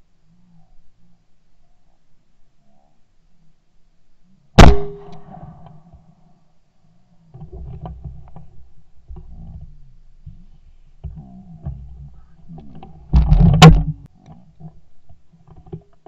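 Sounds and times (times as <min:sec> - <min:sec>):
loud shotgun shot: 0:04.6 - 0:05.6
low rumbling with clicks: 0:07.3 - 0:16.0.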